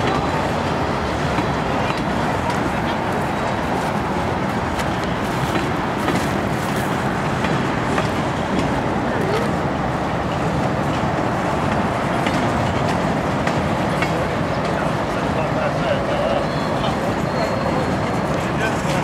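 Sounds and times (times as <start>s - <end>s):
train wheels rumbling on track: 0.0s - 19.0s.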